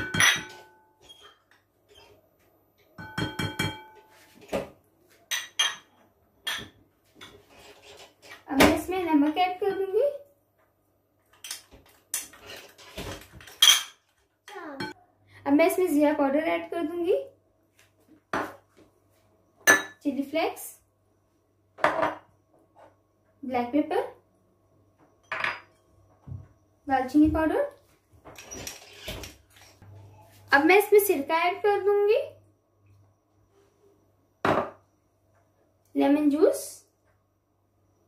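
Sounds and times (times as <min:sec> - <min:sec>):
glass bowls clinking: 0:00.0 - 0:01.6, 0:02.9 - 0:04.2, 0:05.3 - 0:06.8, 0:13.5 - 0:14.0, 0:19.7 - 0:20.0, 0:25.2 - 0:25.9.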